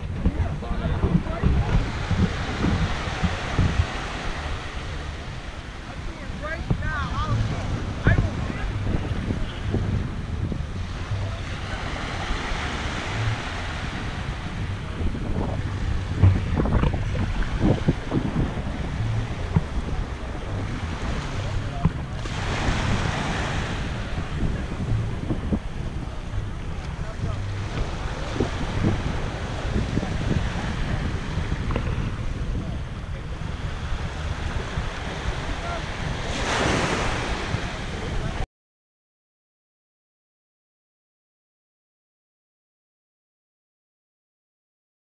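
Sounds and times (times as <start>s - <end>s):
waves lapping on sandy shore: 0.0s - 38.4s
wind buffeting microphone: 0.0s - 38.4s.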